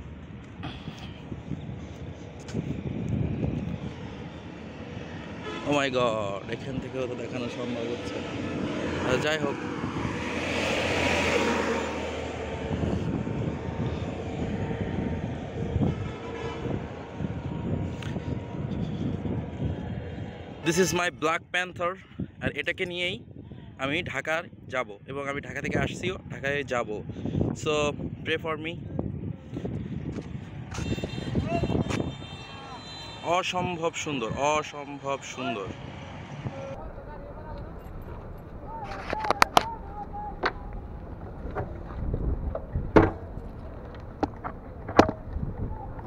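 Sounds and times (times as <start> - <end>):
traffic rumble: 0.0 - 21.5, 28.8 - 46.0
heavy truck passing: 1.7 - 20.6, 35.6 - 46.0.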